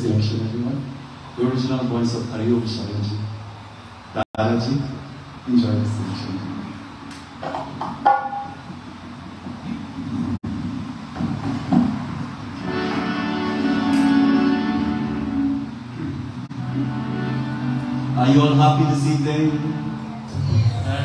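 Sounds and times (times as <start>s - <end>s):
harmonium playing sustained chords: 12.6s - 20.4s.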